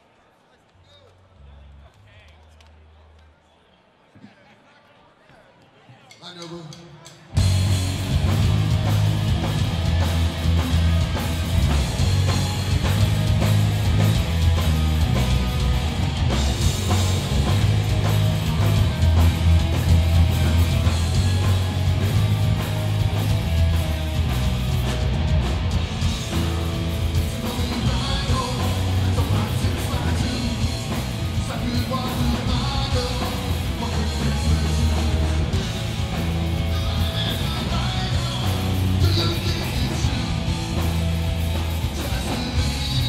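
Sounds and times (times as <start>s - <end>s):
punk band playing live: 7.3s - 43.0s.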